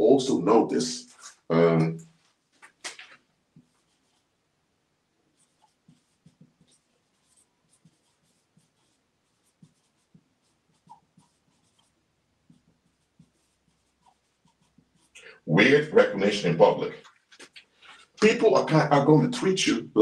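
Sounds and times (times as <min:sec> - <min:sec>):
marker pen writing on whiteboard: 0:01.2 - 0:04.4, 0:05.3 - 0:18.3.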